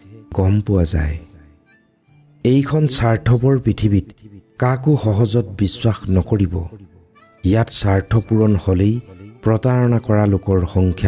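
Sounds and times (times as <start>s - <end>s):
person reciting: 0.0s - 1.7s, 2.4s - 11.0s.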